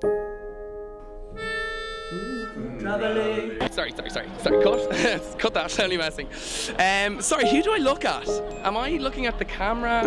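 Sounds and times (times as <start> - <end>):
reedy wind instrument notes: 1.2 - 3.6.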